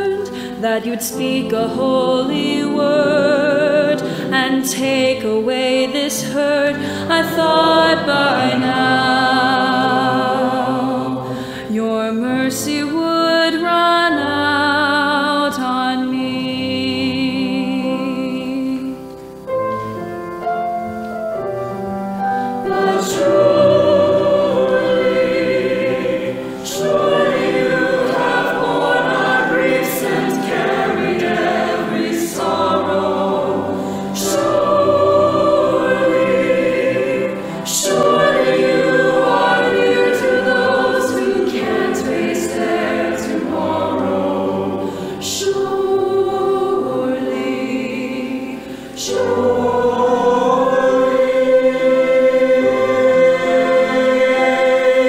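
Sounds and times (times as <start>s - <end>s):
choir singing: 0.0s - 19.1s, 22.2s - 55.0s
singers breathing: 0.3s - 0.6s, 4.0s - 4.3s, 6.8s - 7.1s, 11.2s - 11.7s, 33.8s - 34.2s, 44.8s - 45.2s, 48.6s - 49.0s.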